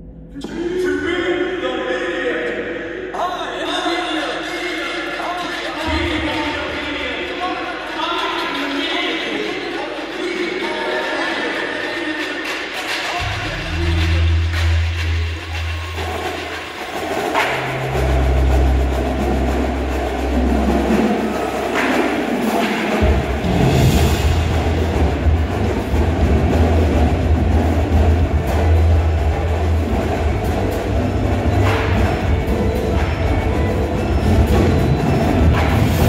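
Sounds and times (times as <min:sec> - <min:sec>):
percussion ensemble playing: 0:05.1 - 0:36.0
sharp drum strokes: 0:12.1 - 0:36.0
low electronic bass tones: 0:13.2 - 0:16.4, 0:17.6 - 0:21.6, 0:23.0 - 0:36.0.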